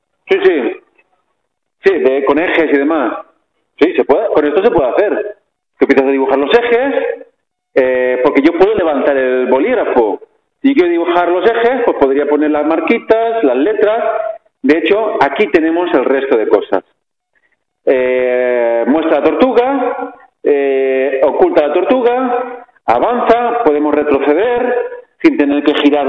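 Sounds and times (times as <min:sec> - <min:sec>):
person talking: 0:17.8 - 0:26.0.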